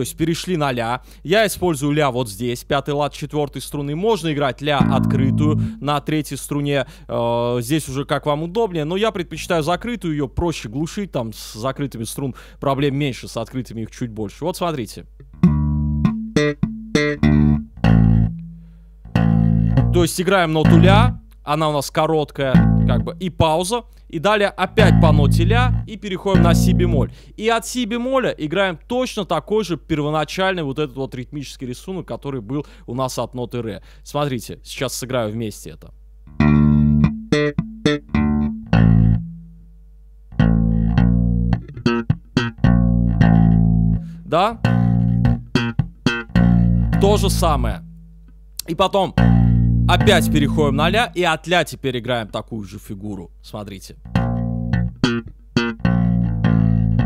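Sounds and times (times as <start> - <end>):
slap bass guitar notes: 4.7 - 6.1, 15.2 - 21.3, 22.5 - 23.5, 24.6 - 27.2, 36.3 - 39.6, 40.3 - 51.2, 54.0 - 57.0.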